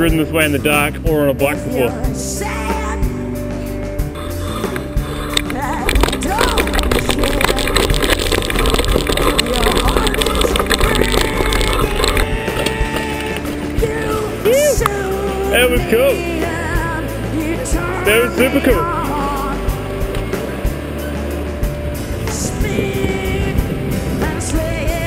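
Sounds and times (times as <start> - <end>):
background music: 0.0 - 25.0
mountain bike rattling on dirt track: 5.4 - 14.0.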